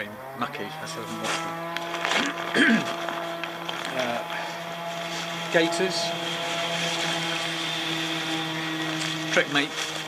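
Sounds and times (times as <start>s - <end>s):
steady engine-like drone: 0.0s - 10.0s
man coughing: 2.2s - 3.0s.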